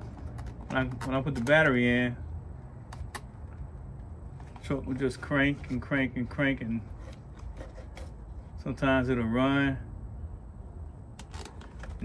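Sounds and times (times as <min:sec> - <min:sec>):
low steady background rumble: 0:00.0 - 0:12.0.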